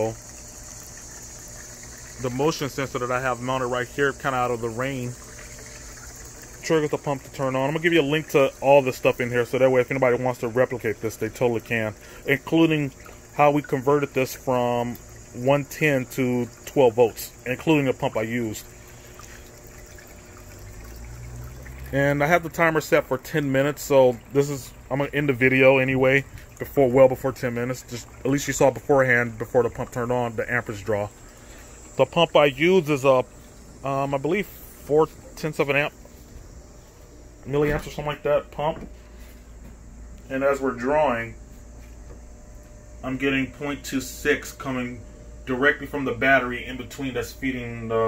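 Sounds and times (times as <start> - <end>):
fountain water trickling: 0.0 - 35.9
pump humming: 0.0 - 48.0.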